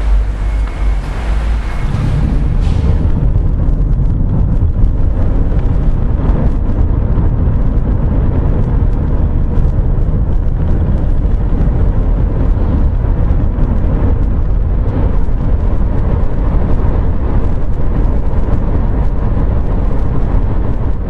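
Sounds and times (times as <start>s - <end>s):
road and wind noise in car cabin: 0.0s - 21.0s.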